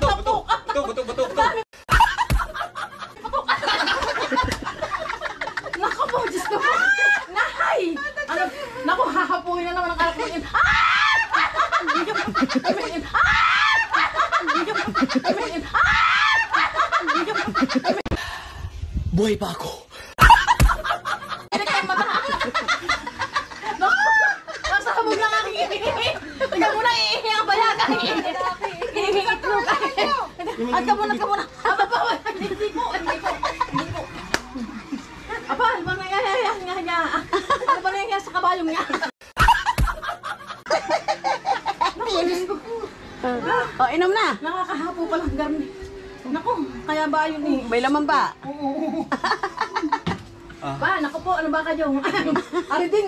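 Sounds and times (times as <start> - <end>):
people laughing and shrieking: 0.0 - 9.0, 10.0 - 18.1, 20.2 - 35.8.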